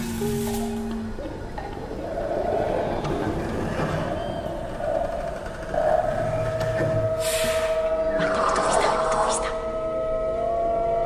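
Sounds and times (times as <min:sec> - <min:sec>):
steady held tone: 0:07.1 - 0:11.0.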